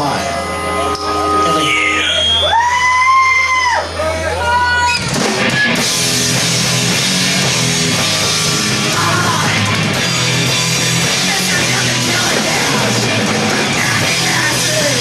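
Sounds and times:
band with distorted guitars and drums: 0:00.0 - 0:15.0.

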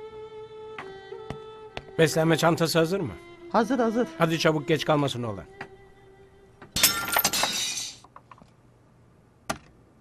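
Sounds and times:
ornament shattering: 0:06.8 - 0:08.0
pieces clattering: 0:06.8 - 0:08.4.

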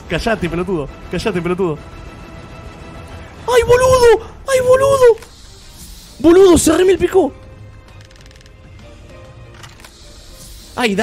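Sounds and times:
slot game background music: 0:00.0 - 0:11.0.

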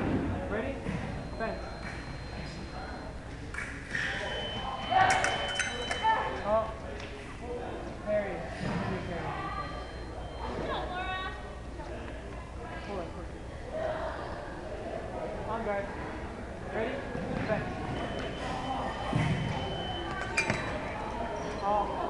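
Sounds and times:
voices chattering in echoing hall: 0:00.0 - 0:22.0
scoring machine high beep: 0:01.2 - 0:03.1, 0:04.1 - 0:06.6, 0:09.4 - 0:10.8, 0:17.9 - 0:22.0.

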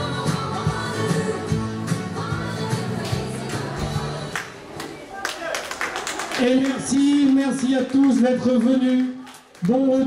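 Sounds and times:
country dance music: 0:00.0 - 0:05.0
hand claps: 0:04.3 - 0:09.8.

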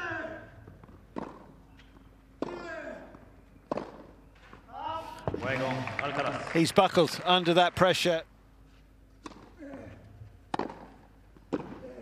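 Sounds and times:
tennis ball struck by rackets: 0:01.1 - 0:01.5, 0:02.4 - 0:02.7, 0:03.7 - 0:04.1, 0:10.5 - 0:11.8.

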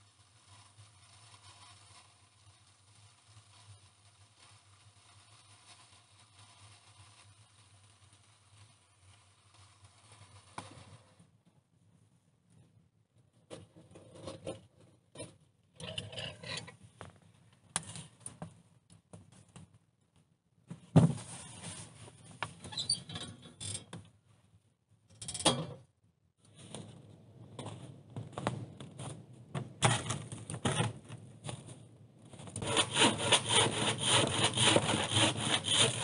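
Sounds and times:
knocks and scrapes in firebox: 0:00.0 - 0:11.4, 0:13.4 - 0:19.8, 0:20.7 - 0:24.1, 0:26.4 - 0:36.0.

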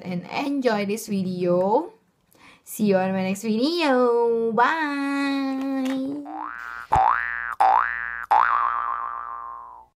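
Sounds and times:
cartoon boing twang: 0:06.2 - 0:09.9.

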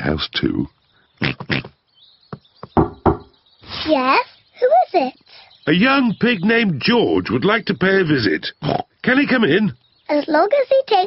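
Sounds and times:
knocking on door: 0:02.3 - 0:03.3.

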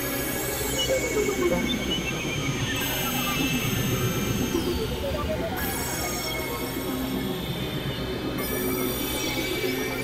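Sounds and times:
droning electronic tones: 0:00.0 - 0:07.1.

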